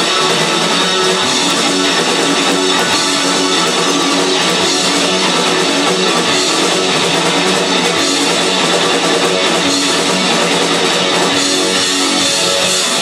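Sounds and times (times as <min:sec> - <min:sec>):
bass guitar: 0:00.0 - 0:13.0
drum kit: 0:00.0 - 0:13.0
electric guitar: 0:00.0 - 0:13.0.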